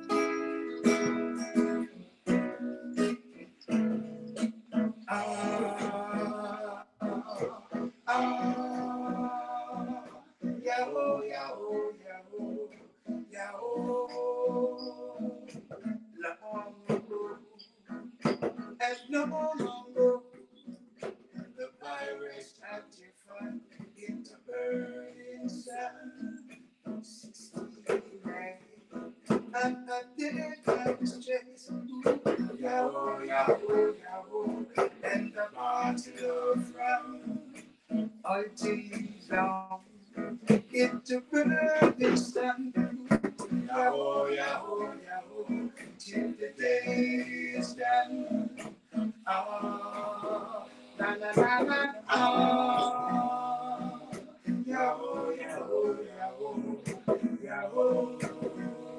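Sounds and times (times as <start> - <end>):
strummed acoustic guitar: 0.0 - 58.9
men singing reggae: 5.1 - 17.6, 21.6 - 28.6, 29.6 - 58.9.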